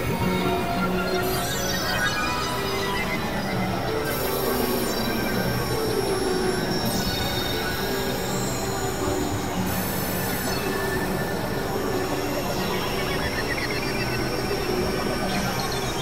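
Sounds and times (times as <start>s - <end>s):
synthesizer drone music: 0.0s - 16.0s.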